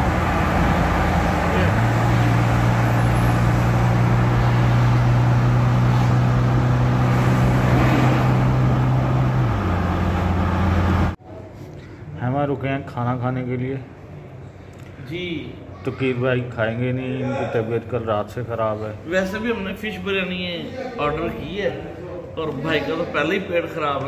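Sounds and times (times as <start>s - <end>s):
car engine hum: 0.0s - 11.2s
tyre and road noise: 0.0s - 11.2s.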